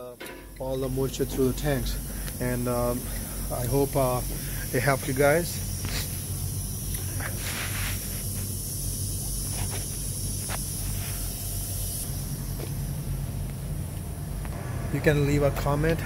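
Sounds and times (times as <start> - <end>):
high steady hiss: 0.0 - 16.0.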